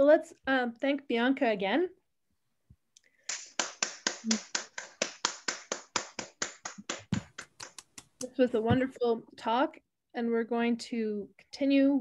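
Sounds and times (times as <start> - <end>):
hands clapping in applause: 3.2 - 8.3.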